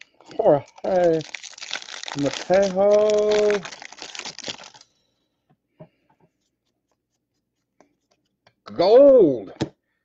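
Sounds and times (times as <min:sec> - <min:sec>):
trading cards rustling: 0:00.0 - 0:04.9.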